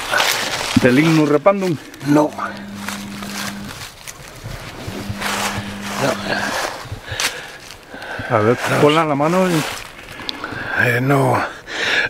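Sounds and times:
dry leaves rustling: 0:00.0 - 0:10.2
steady low hum: 0:01.7 - 0:08.2.

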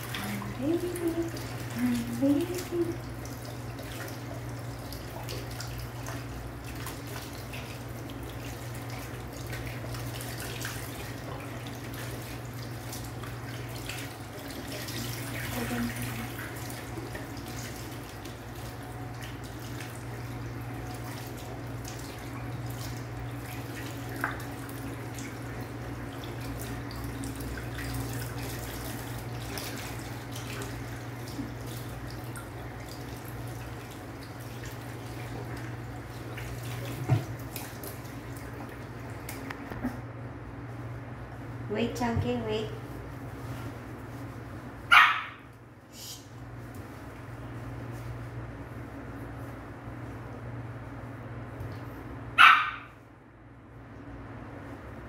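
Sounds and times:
tap water running and splashing: 0:00.0 - 0:44.8.

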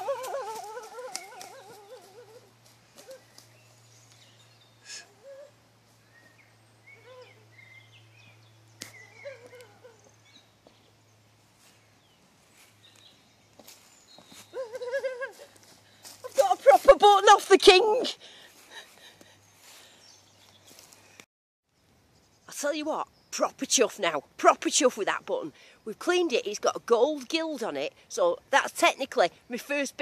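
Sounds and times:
person calling out: 0:16.2 - 0:18.2.

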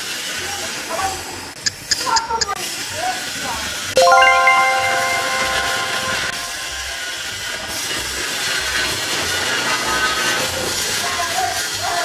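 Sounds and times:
background music with soft pulse: 0:04.0 - 0:07.4
glockenspiel chime: 0:04.0 - 0:07.4.

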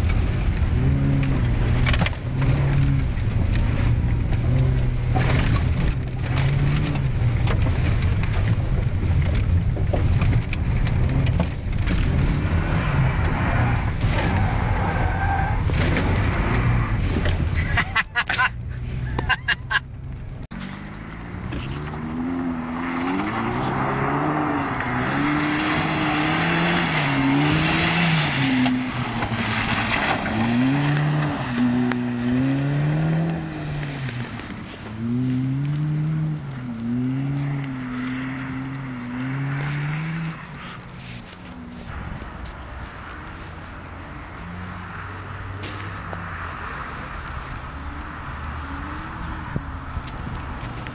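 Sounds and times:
car engine at high revs: 0:00.0 - 0:17.6, 0:18.4 - 0:50.9.

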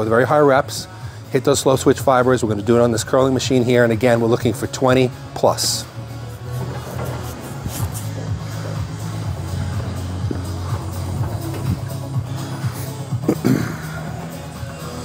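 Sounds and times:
background music with low bass: 0:00.0 - 0:15.0.

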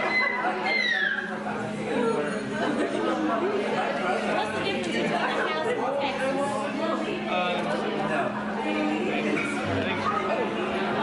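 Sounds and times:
overlapping table chatter: 0:00.0 - 0:11.0.

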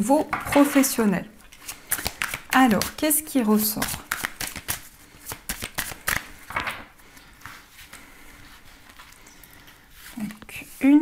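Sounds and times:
cards being shuffled: 0:01.5 - 0:08.0.

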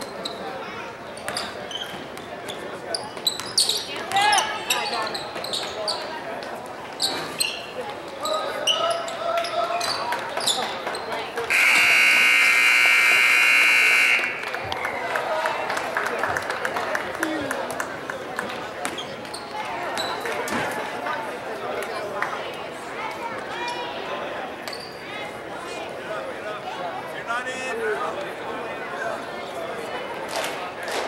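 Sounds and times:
sneaker squeaks: 0:00.0 - 0:06.2, 0:06.9 - 0:12.0, 0:18.8 - 0:20.2, 0:24.6 - 0:25.1
loud scoreboard buzzer: 0:11.5 - 0:14.6.

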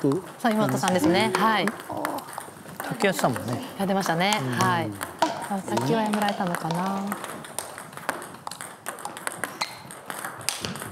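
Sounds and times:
table tennis balls clicking: 0:00.0 - 0:10.9.

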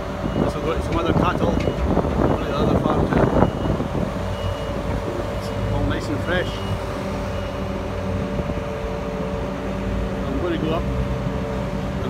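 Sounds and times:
reversing alarm beep: 0:00.2 - 0:08.2.

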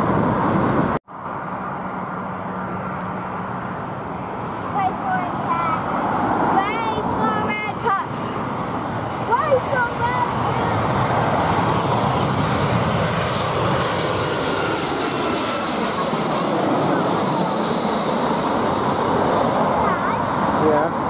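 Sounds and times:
jet airliner roaring overhead: 0:00.0 - 0:21.0.

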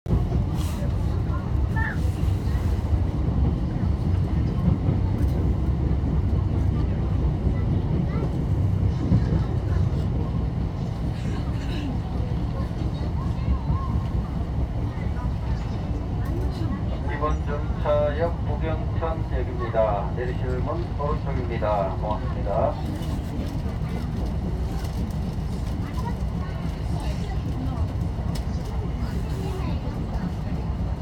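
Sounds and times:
passenger train rumbling: 0:00.0 - 0:31.0.

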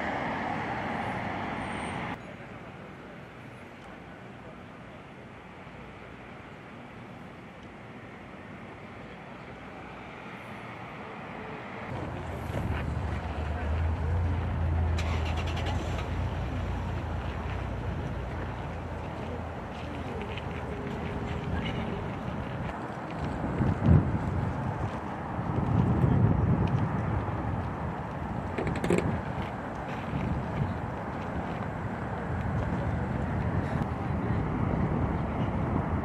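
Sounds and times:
distant city noise: 0:00.0 - 0:36.0
low rumble of road traffic: 0:00.0 - 0:36.0.

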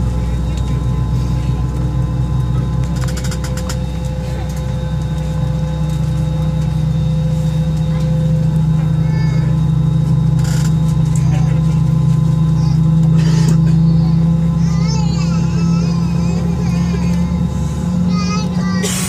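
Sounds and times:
aircraft cabin drone: 0:00.0 - 0:19.0.

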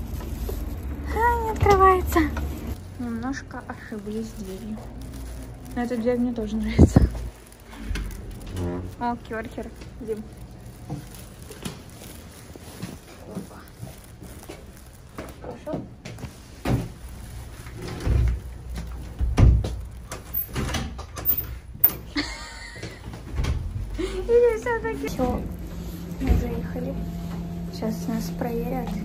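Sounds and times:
door opening: 0:07.7 - 0:09.2.

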